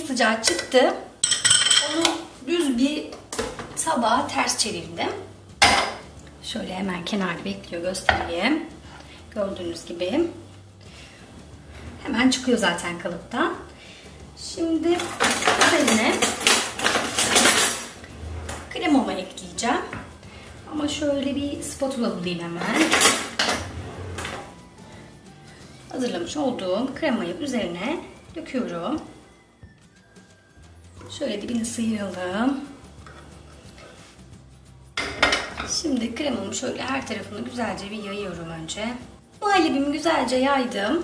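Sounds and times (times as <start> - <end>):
dishes and utensils clattering: 0.3 - 2.3, 5.5 - 6.2, 14.6 - 25.1, 34.9 - 37.6.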